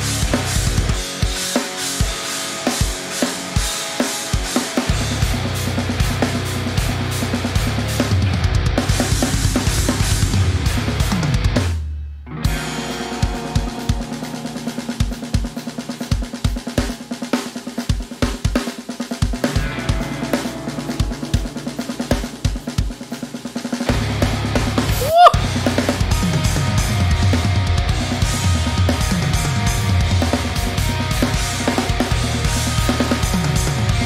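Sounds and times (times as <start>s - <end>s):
drum kit playing: 0.0s - 34.0s
heavy metal music: 0.0s - 34.0s.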